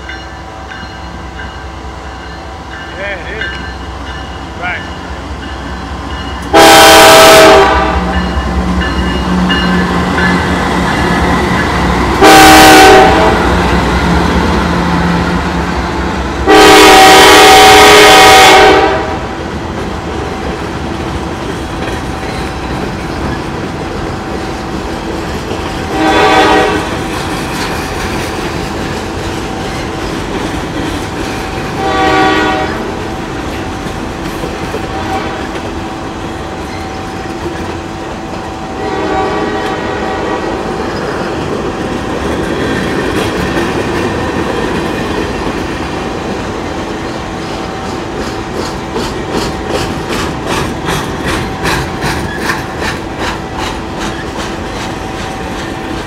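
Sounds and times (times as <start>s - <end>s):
locomotive air horn blasts: 6.5s - 8.2s, 12.2s - 13.6s, 16.4s - 19.2s, 25.9s - 26.9s, 31.8s - 32.9s, 34.9s - 35.5s, 38.8s - 40.4s.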